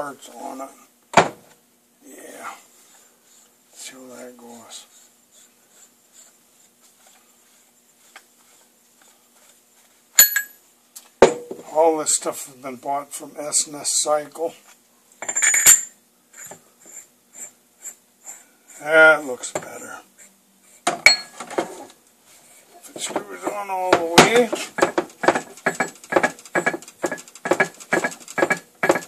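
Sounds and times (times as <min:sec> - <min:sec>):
faint steady hum: 0:00.0 - 0:27.8
metal clinks: 0:10.2 - 0:10.6, 0:15.2 - 0:16.0.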